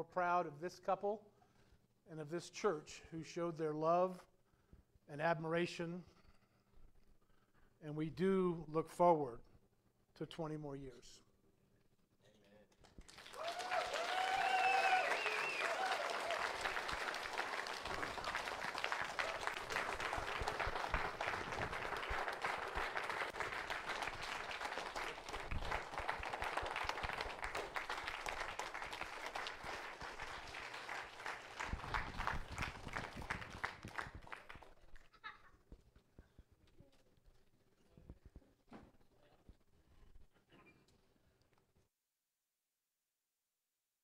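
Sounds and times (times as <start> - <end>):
crowd clapping: 12.7 - 35.1
voices cheering: 13.3 - 20.4.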